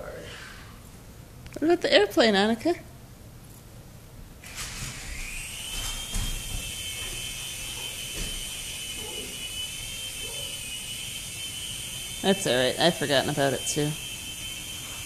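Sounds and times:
toy airplane motor whine: 4.4s - 15.0s.

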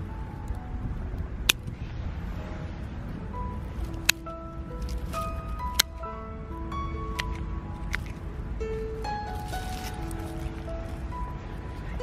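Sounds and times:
slow melodic background music: 0.0s - 12.0s
pruning shears snipping twigs: 9.4s - 10.6s.

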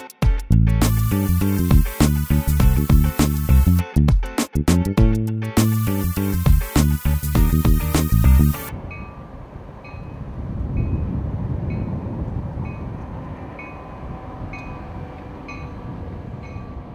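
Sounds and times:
music: 0.0s - 8.7s
train rumbling past: 8.7s - 16.9s.

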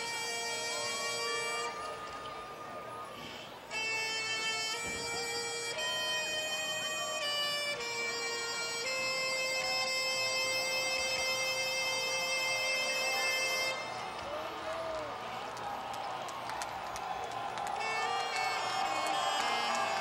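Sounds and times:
marching band wind section playing: 0.0s - 14.2s, 17.7s - 20.0s.

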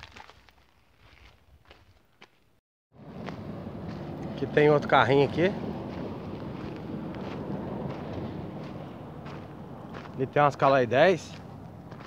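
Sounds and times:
faint footsteps: 3.0s - 4.7s, 5.7s - 12.0s
wind on microphone: 4.9s - 10.1s.

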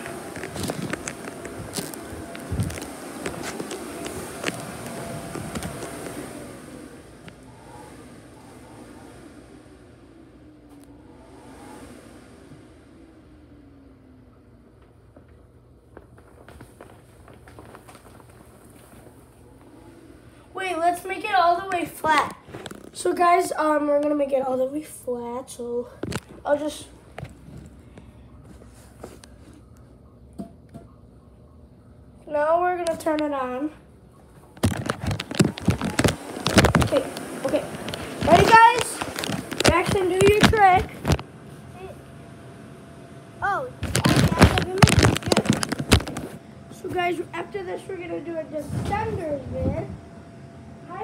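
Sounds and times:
vinyl crinkling and knocking: 0.0s - 6.3s, 14.7s - 19.7s, 21.7s - 23.0s, 26.0s - 26.5s, 34.3s - 41.3s, 43.8s - 47.2s
inflation blower humming: 0.0s - 31.6s, 32.3s - 51.0s.

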